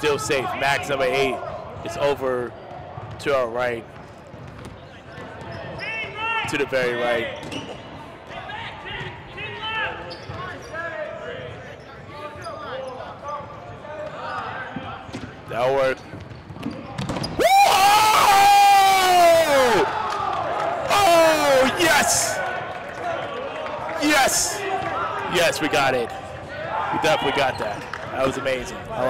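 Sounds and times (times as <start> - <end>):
players shouting: 17.4 - 29.0
long loud yell: 20.9 - 22.4.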